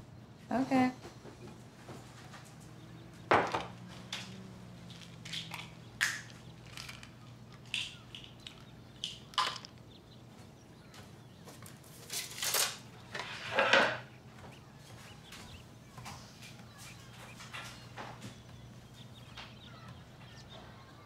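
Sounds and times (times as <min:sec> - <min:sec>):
low steady hum: 0:00.0 - 0:21.0
objects knocking and clattering: 0:01.1 - 0:09.9, 0:12.2 - 0:14.1.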